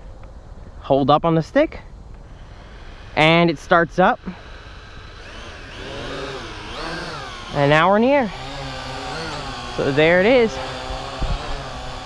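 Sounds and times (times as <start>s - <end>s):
quadcopter motors whining: 2.2s - 12.0s.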